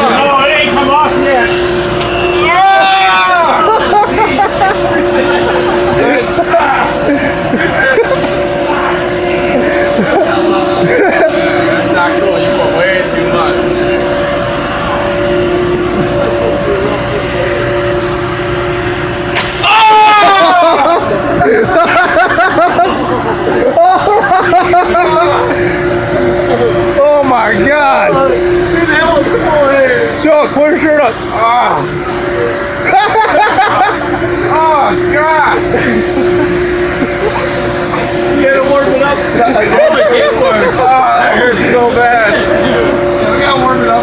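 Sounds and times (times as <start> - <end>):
held tones: 0.0 - 44.0
loud rushing noise: 0.0 - 44.0
machinery droning: 0.0 - 44.0.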